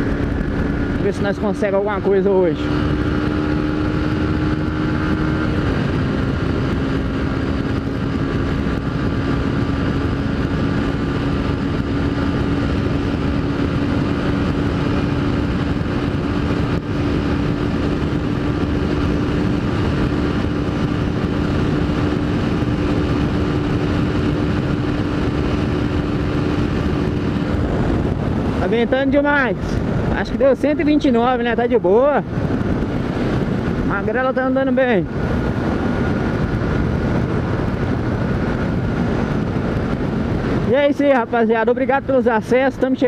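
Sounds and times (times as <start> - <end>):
motorcycle engine running at high revs: 0.0 - 43.0
wind rushing over microphone: 0.0 - 43.0.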